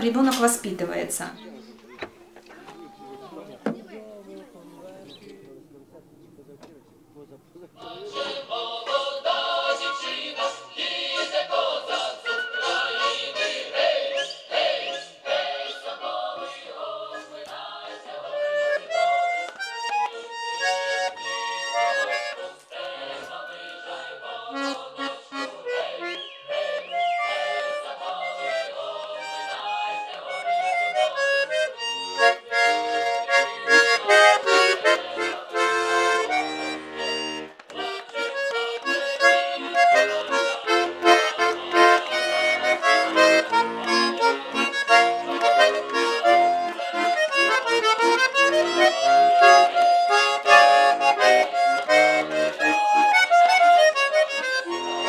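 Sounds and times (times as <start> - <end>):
button accordion folk tune: 7.8 - 55.0.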